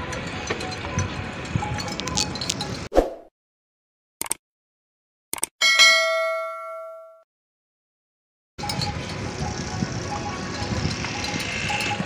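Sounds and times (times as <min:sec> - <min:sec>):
camels moving over stony ground: 0:00.0 - 0:02.9, 0:08.6 - 0:12.0
bell-like notification ding: 0:05.6 - 0:07.2.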